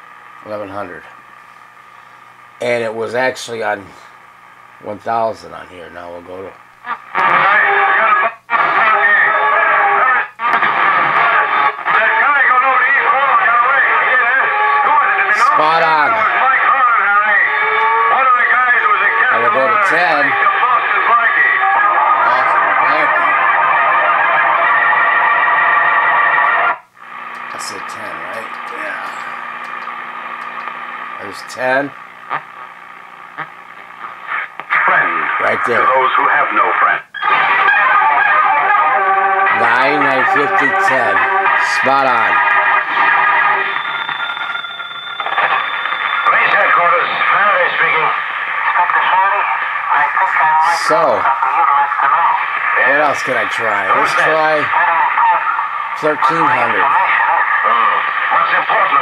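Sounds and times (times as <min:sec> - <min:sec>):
radio voices and music: 0:07.2 - 0:32.6, 0:34.0 - 0:59.0.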